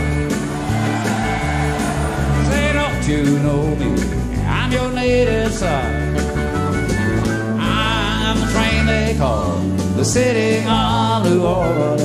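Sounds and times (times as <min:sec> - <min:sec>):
live country band playing: 0:00.0 - 0:12.0
man singing: 0:02.3 - 0:06.2, 0:07.6 - 0:12.0.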